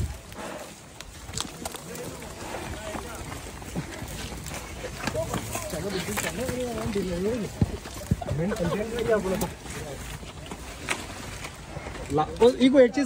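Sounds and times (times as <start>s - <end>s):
footsteps on sandy ground: 0.0s - 12.6s
men talking in background: 1.4s - 11.0s, 11.6s - 13.0s.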